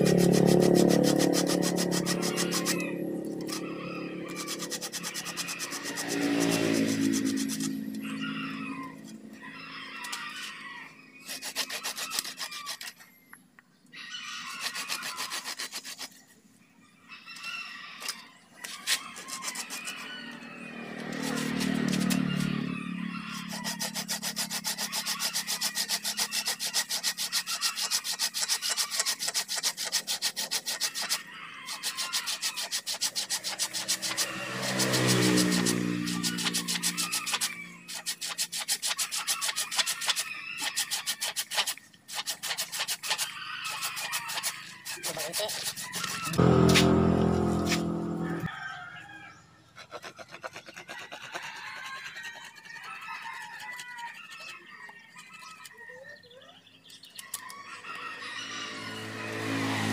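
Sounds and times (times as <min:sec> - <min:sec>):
hand saw rasping through wood: 0:00.0 - 0:08.7, 0:11.2 - 0:13.0, 0:14.4 - 0:16.2, 0:18.6 - 0:48.5, 0:49.8 - 0:54.6
low-pitched background sound: 0:46.4 - 0:48.5.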